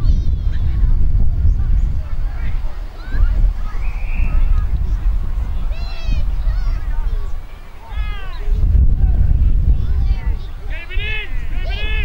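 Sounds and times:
steady low rumble: 0.0s - 12.0s
people shouting drawn-out calls: 10.7s - 12.0s.

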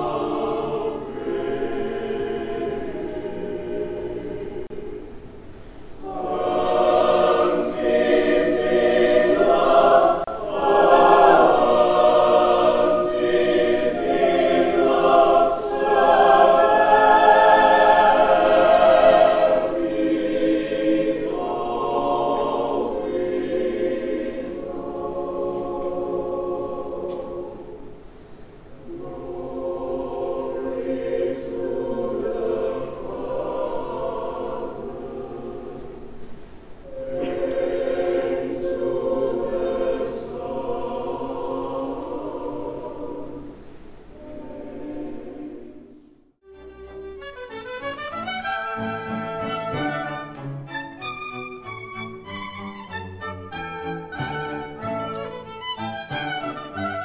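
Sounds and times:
mixed choir singing chords: 0.0s - 57.0s.

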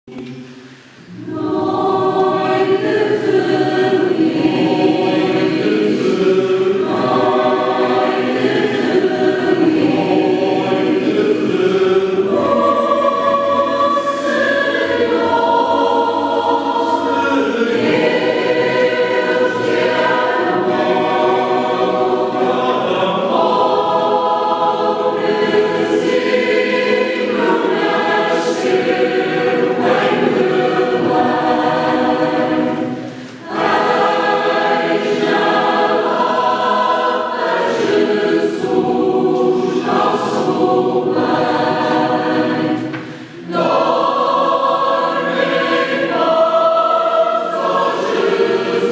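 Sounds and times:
mixed choir singing a carol: 0.2s - 48.9s.

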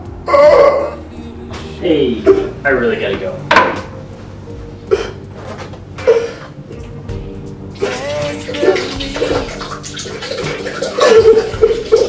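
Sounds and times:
man sobbing and wailing: 0.2s - 1.5s, 10.9s - 12.0s.

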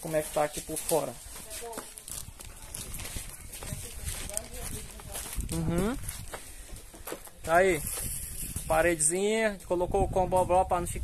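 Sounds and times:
footsteps on sand: 0.0s - 8.8s.

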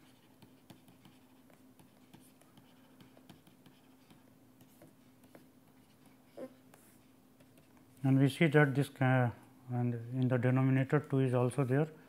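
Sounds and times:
pen scratching and tapping: 0.0s - 6.2s.

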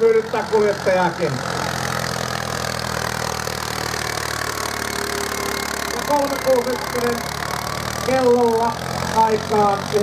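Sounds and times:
tractor engine running under load: 0.0s - 10.0s.

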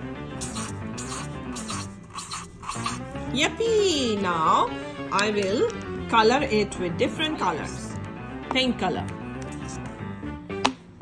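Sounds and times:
background music: 0.0s - 11.0s
marker scratching on paper: 0.4s - 3.1s.

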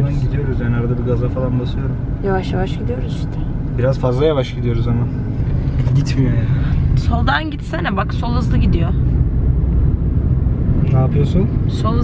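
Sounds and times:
car rumble from inside cabin: 0.0s - 12.0s.

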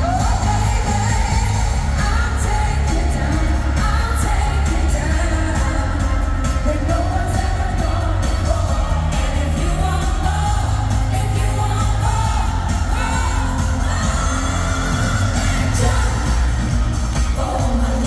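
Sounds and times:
heavy bass beat: 0.0s - 18.0s
pop group singing live: 0.0s - 18.0s.

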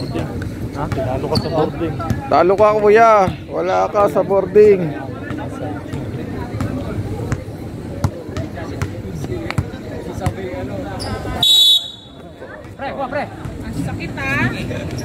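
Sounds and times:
faint background chatter: 0.0s - 15.0s
basketball bouncing on concrete: 4.6s - 10.5s
referee's whistle blast: 11.4s - 12.2s.

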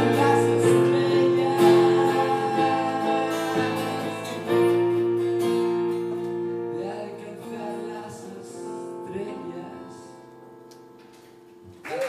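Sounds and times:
electric keyboard chords: 0.0s - 6.8s
acoustic guitar chords: 0.0s - 11.8s.

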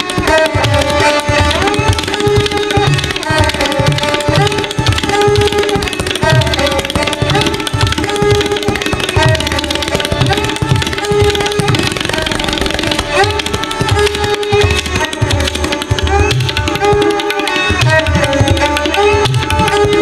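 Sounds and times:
bowed string melody: 0.0s - 20.0s
tabla drumming: 0.0s - 20.0s.

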